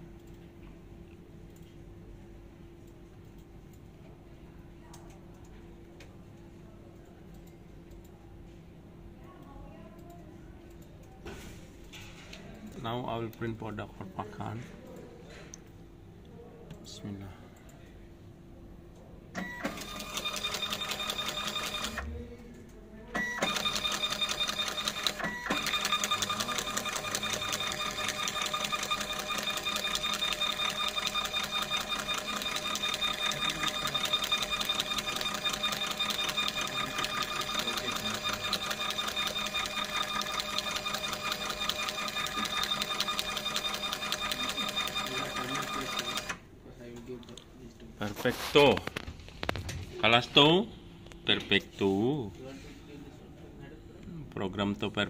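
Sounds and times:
label printer motor whine: 19.4s - 22.1s, 23.2s - 46.4s
fast fine ticking of labels feeding: 19.8s - 22.0s, 23.4s - 46.4s.

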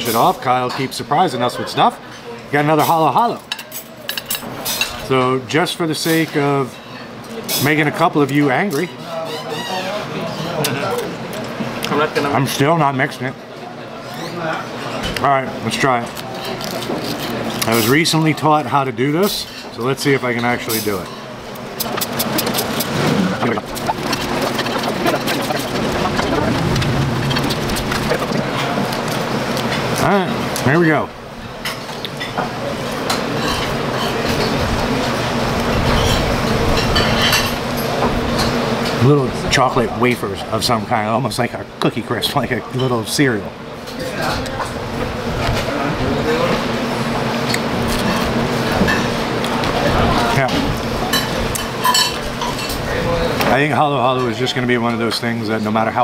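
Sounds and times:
diners chatting: 0.0s - 56.0s
steady low hum: 14.7s - 42.7s
plastic spoon scraping shaved ice: 21.8s - 29.1s.

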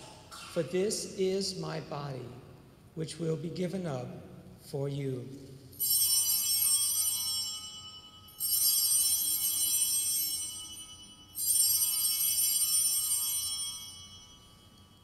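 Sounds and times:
altar bells ringing: 5.7s - 15.0s.

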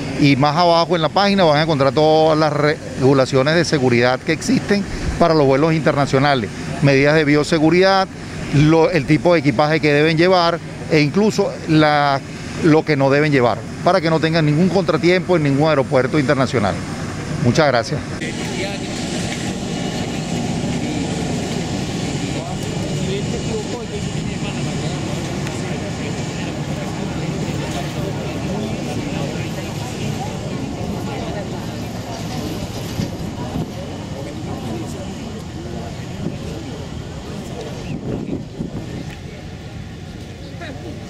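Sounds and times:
jet engines rumbling: 0.0s - 41.0s
wind on microphone: 4.6s - 6.8s, 36.0s - 39.8s.

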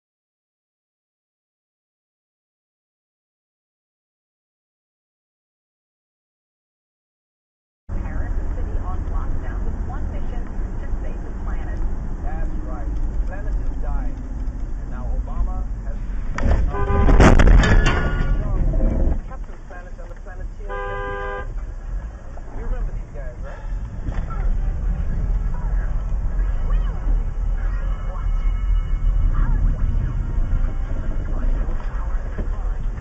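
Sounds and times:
car cabin and road rumble: 7.9s - 33.0s
sudden loud noise burst: 16.1s - 19.2s
car horn blaring: 16.4s - 18.6s, 20.5s - 21.8s, 24.4s - 32.7s
car horn short honk: 16.5s - 18.6s, 20.7s - 21.7s.

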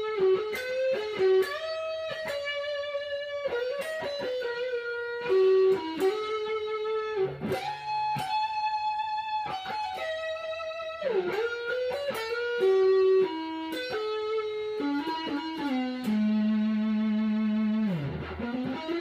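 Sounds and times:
electric guitar lead line: 0.0s - 19.0s.

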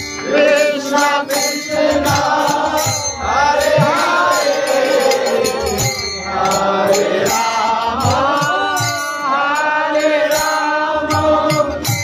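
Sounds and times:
harmonium chords: 0.0s - 12.0s
percussion beat: 0.0s - 12.0s
voices chanting a melody: 0.2s - 11.9s.

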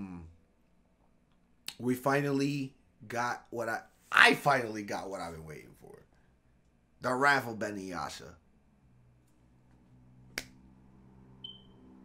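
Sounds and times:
faint low hum: 0.0s - 12.0s
finger snap: 1.3s - 1.8s, 10.3s - 10.6s.

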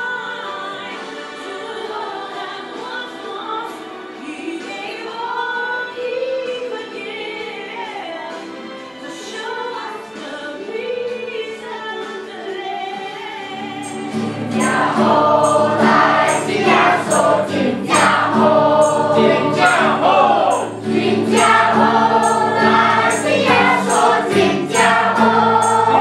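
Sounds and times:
choir singing a carol: 13.2s - 26.0s
high ticking beat: 13.8s - 26.0s.

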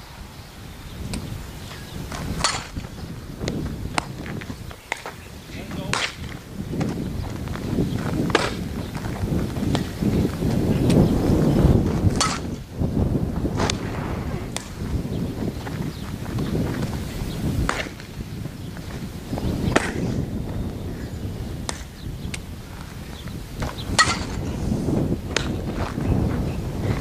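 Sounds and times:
ball cracks and glove pops: 5.9s - 7.0s, 8.3s - 8.6s, 17.6s - 18.1s, 19.7s - 20.0s, 21.6s - 22.4s, 25.3s - 25.6s
low rumble: 11.2s - 16.9s.

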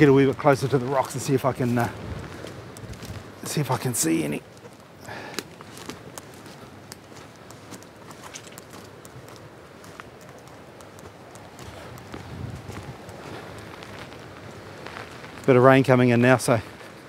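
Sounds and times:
footsteps through undergrowth: 0.0s - 17.0s
sharp clicks: 4.5s - 9.4s, 10.0s - 12.2s.

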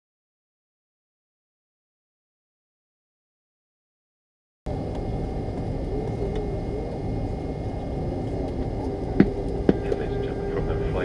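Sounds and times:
cabin air: 4.7s - 11.0s
jet engines idling: 4.7s - 11.0s
steady hum: 4.7s - 11.0s.

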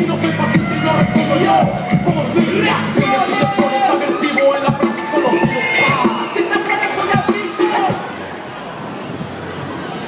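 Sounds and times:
loud music with steady beat: 0.0s - 8.1s.

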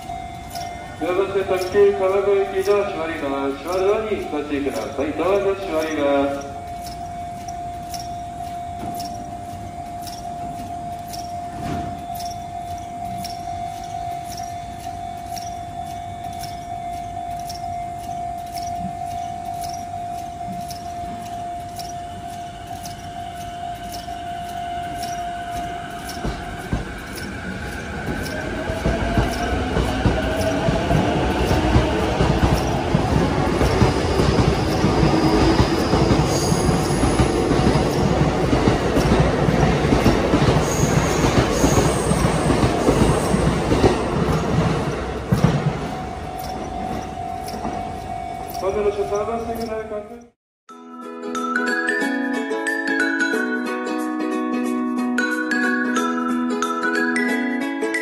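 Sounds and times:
steady tone: 0.0s - 49.8s
train traction motors whining: 0.0s - 50.3s
wheel and rail rumble: 0.0s - 50.4s.

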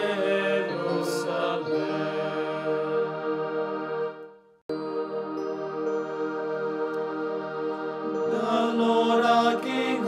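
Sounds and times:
chanted singing: 0.0s - 4.2s, 4.8s - 10.0s
sustained keyboard chord: 0.0s - 10.0s.

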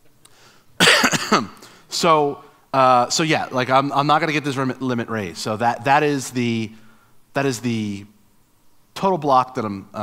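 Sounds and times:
man coughing: 0.8s - 1.8s.

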